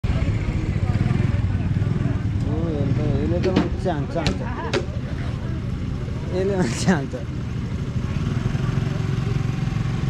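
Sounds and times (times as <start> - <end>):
scooter engine passing by: 4.8 - 10.0.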